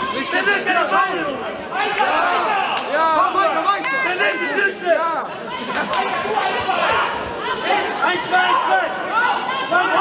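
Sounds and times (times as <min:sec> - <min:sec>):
many voices talking in hall: 0:00.0 - 0:10.0.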